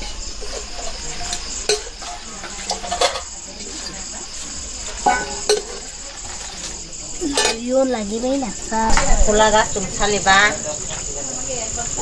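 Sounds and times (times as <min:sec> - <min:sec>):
spoon stirring greens in wok: 0:00.0 - 0:07.5
crickets chirping: 0:00.0 - 0:12.0
light sizzle: 0:00.0 - 0:12.0.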